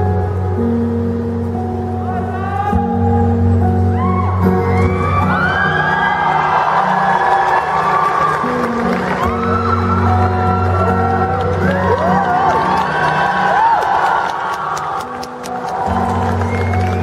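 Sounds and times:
acoustic guitar playing: 0.0 - 17.0
audience whooping and cheering: 3.7 - 17.0.

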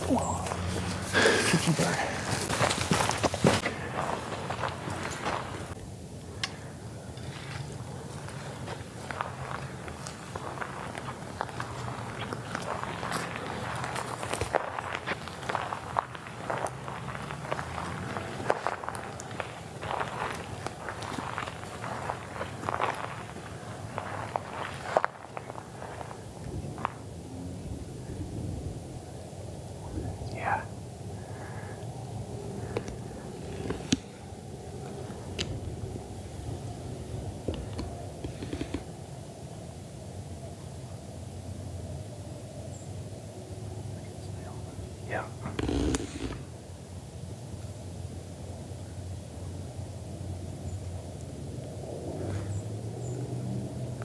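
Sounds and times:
footsteps through dry grass: 0.1 - 5.8, 7.2 - 27.0.

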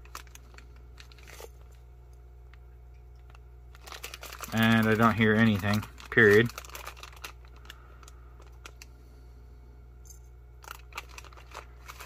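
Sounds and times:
plastic pouch crinkling: 0.0 - 1.8, 3.1 - 9.0, 10.6 - 12.0
low steady hum: 0.0 - 12.0.

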